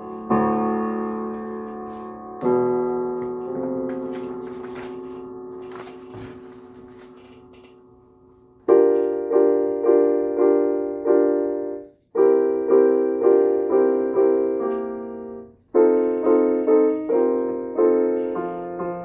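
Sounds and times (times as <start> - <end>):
paper rustling: 0.0 - 7.8
piano chords: 0.0 - 19.0.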